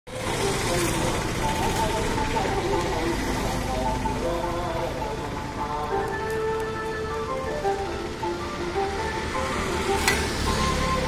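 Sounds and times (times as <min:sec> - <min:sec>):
road traffic noise: 0:00.1 - 0:11.0.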